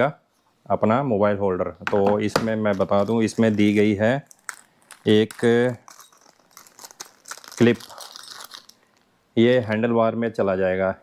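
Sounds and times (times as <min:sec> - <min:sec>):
person speaking: 0:01.5 - 0:10.4
plastic packaging crinkling: 0:02.6 - 0:09.1.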